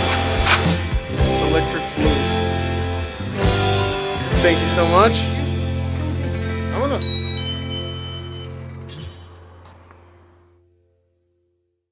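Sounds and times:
background music held chord: 0.0s - 9.6s.

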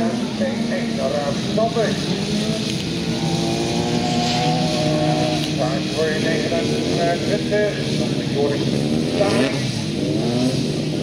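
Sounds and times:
racing car engines at high revs: 0.0s - 11.0s.

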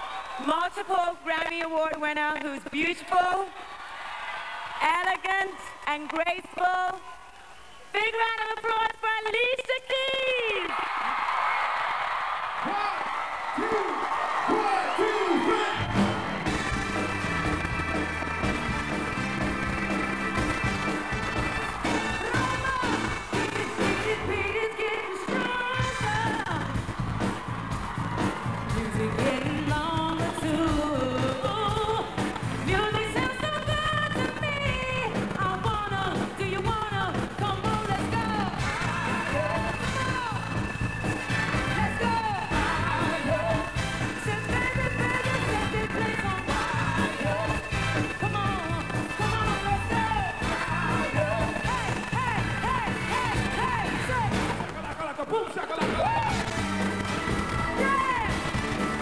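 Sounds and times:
drums and bass beat: 15.7s - 59.0s
woman singing: 22.3s - 26.7s, 28.7s - 40.5s, 41.7s - 54.5s.

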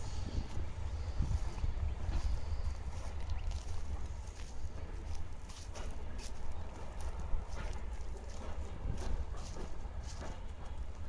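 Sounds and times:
wind buffeting microphone: 0.0s - 11.0s
footsteps on gravel: 0.5s - 11.0s.

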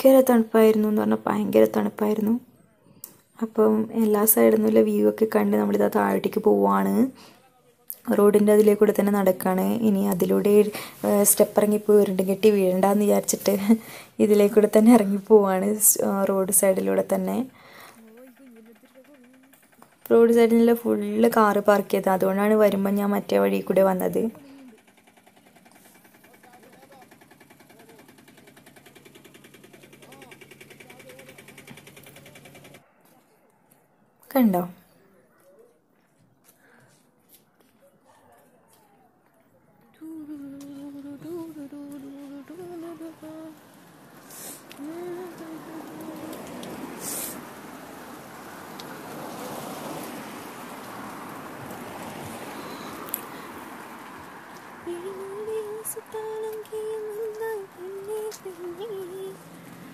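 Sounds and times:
small engine running: 9.0s - 32.9s, 40.0s - 59.9s.

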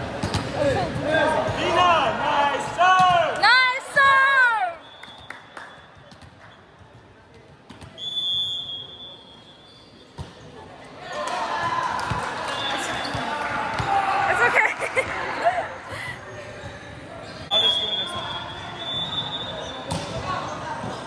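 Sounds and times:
players calling and shouting: 0.0s - 5.8s, 10.4s - 21.0s.

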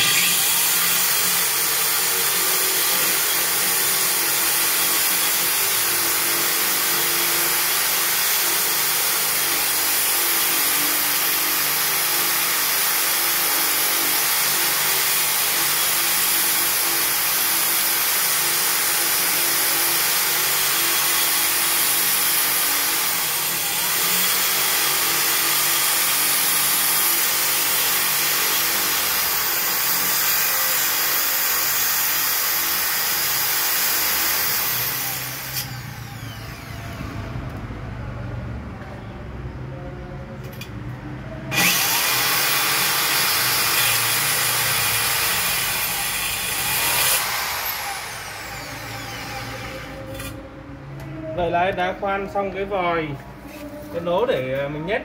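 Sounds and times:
electric drill grinding glass: 0.0s - 37.2s, 41.5s - 50.5s.

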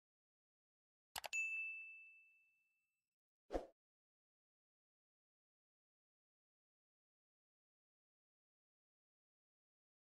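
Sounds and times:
high bell-like ding: 1.3s - 2.7s.

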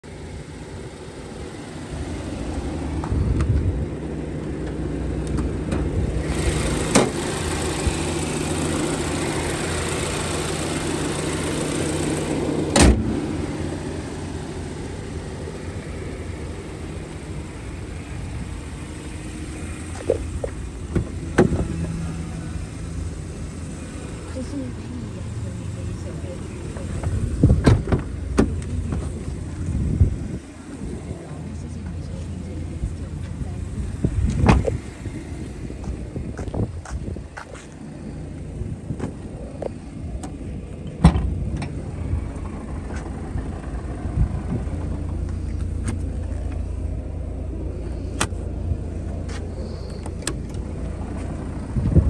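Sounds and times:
car engine starting and idling: 0.0s - 52.0s
engine hiss: 6.1s - 36.0s, 41.5s - 51.9s
loud thump: 12.7s - 13.1s, 20.9s - 21.7s, 41.0s - 41.3s.

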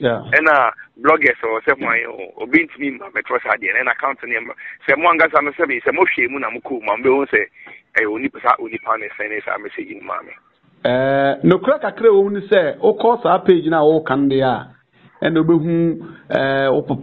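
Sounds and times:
man speaking: 0.0s - 17.0s.

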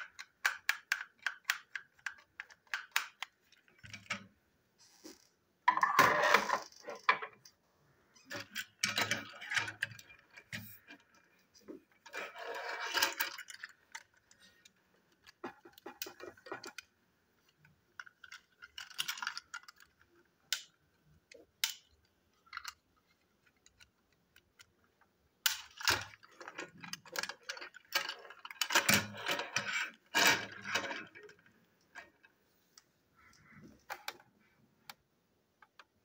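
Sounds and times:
plastic toy parts clicking: 0.0s - 4.3s, 8.2s - 11.3s, 12.0s - 32.3s.

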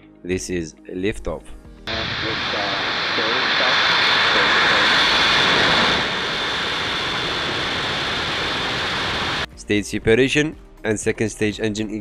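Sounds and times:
rocket engines roaring: 1.9s - 9.5s.

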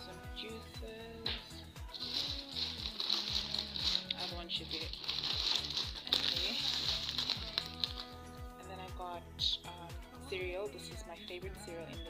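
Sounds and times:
music with deep beat: 0.8s - 11.1s
plastic bag crinkling: 1.9s - 8.2s.

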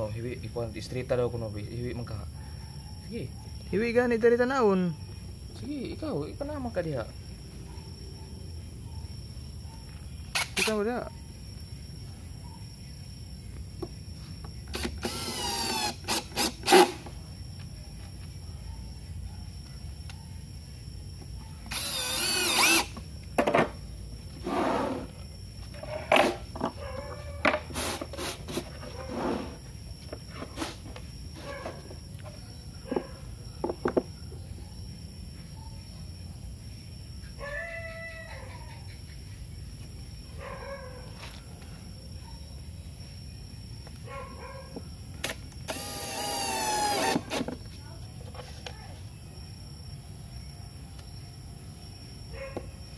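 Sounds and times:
cordless drill driving a screw: 14.7s - 16.9s, 21.7s - 22.9s, 45.7s - 47.4s.

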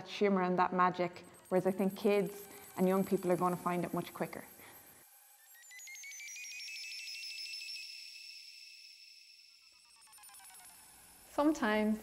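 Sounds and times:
faint sustained high notes: 0.9s - 12.0s
gliding fluttering synth tones: 1.0s - 8.7s.

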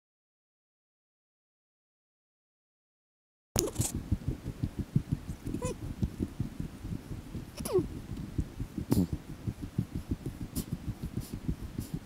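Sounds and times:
low rumbling and thumping: 3.6s - 12.0s.

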